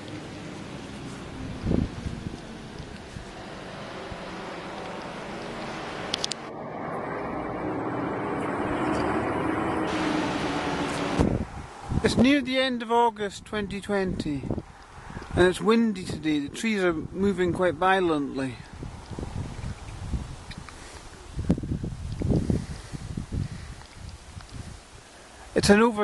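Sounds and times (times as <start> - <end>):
wind buffeting microphone: 0.0 - 12.5, 13.4 - 25.0.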